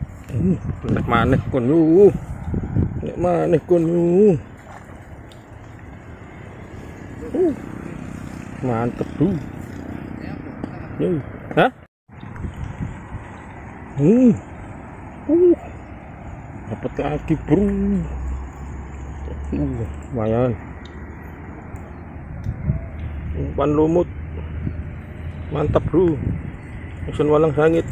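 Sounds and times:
wind noise on microphone: 0:00.0 - 0:10.5, 0:12.1 - 0:14.0, 0:21.9 - 0:27.9
low outdoor rumble: 0:00.0 - 0:27.9.

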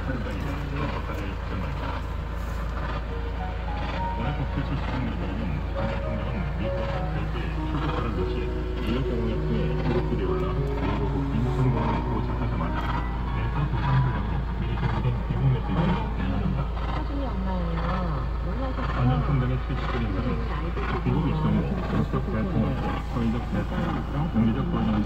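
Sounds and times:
music on car radio: 0:00.0 - 0:25.0
steady low hum: 0:00.0 - 0:25.0
voices on car radio: 0:00.0 - 0:25.0.

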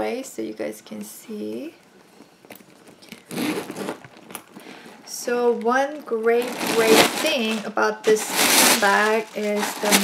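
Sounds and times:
bag rustling: 0:02.7 - 0:05.0, 0:06.3 - 0:10.0
zipper pulled open: 0:03.1 - 0:04.4.

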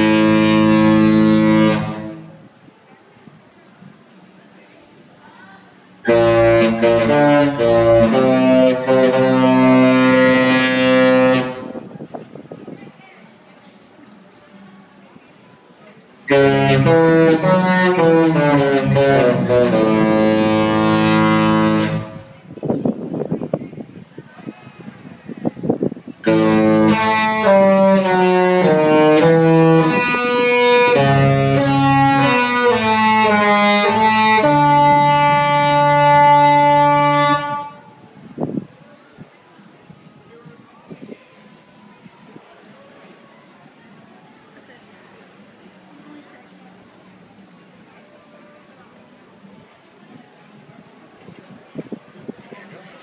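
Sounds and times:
cruise ship horn: 0:00.0 - 0:02.5, 0:06.0 - 0:11.9, 0:16.3 - 0:22.5, 0:26.2 - 0:38.0.

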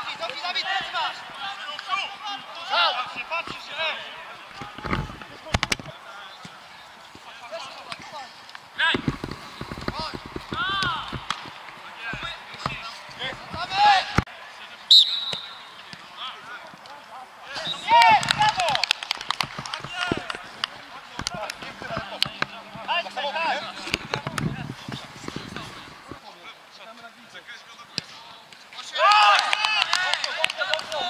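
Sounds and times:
players shouting calls: 0:00.0 - 0:09.0, 0:10.5 - 0:24.3, 0:28.7 - 0:31.0
high whistle-like tone: 0:14.9 - 0:15.7.

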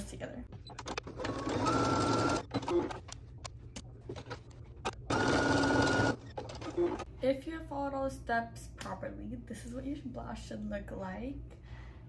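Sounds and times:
sewing machine stitching: 0:00.8 - 0:03.1, 0:04.2 - 0:07.1.

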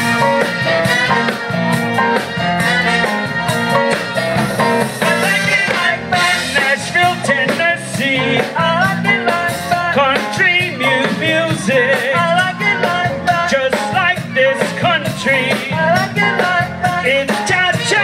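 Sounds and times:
congas: 0:00.0 - 0:18.0
salsa band playing: 0:00.0 - 0:18.0
person singing: 0:05.0 - 0:18.0.

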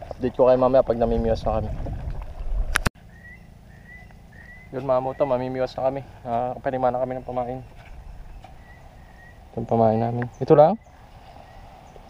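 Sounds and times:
low rumble: 0:00.0 - 0:09.6
bird whistled calls: 0:03.1 - 0:05.8, 0:07.1 - 0:09.6.

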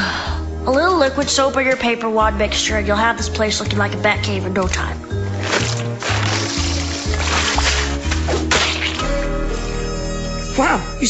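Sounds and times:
background music: 0:00.0 - 0:11.0
wet whip-like smack: 0:05.4 - 0:09.1.

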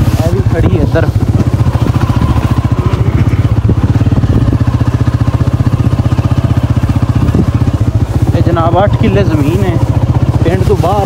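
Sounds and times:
small motorcycle engine running: 0:00.0 - 0:11.0.

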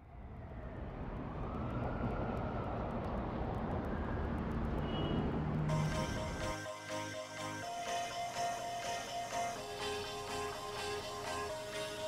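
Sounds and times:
city traffic rumble and hiss: 0:00.0 - 0:12.0.

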